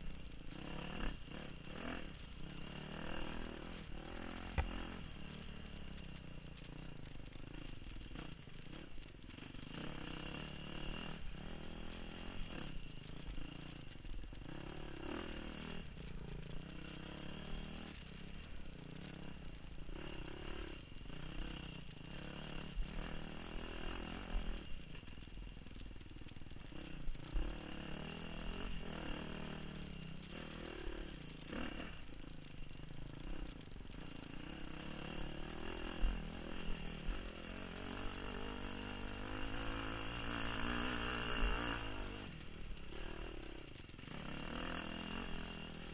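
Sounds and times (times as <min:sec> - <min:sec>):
dirt bike engine revving: 0:00.0 - 0:45.9.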